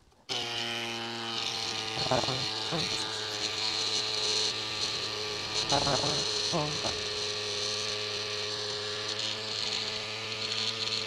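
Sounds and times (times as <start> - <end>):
electric pump humming: 0.0 - 11.0.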